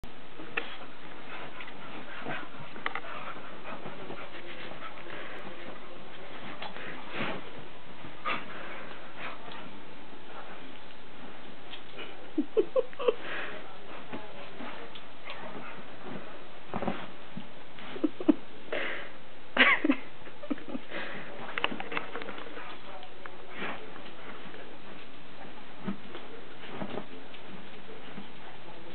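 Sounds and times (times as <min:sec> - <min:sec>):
bedding rustling: 0:00.1 - 0:18.4, 0:19.6 - 0:28.9
dog panting: 0:00.6 - 0:07.4.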